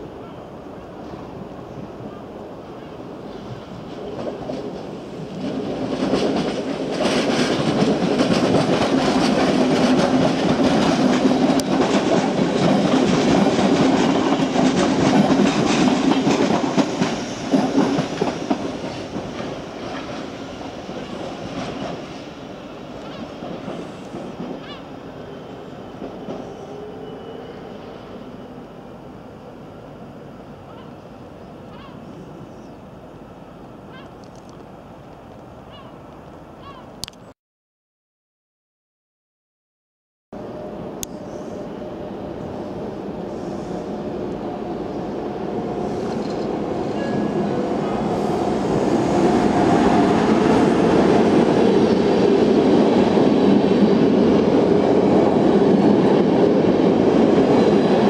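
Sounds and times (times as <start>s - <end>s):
train wheels on rails: 3.2s - 28.7s, 40.6s - 58.0s
rail clicks: 3.3s - 22.2s.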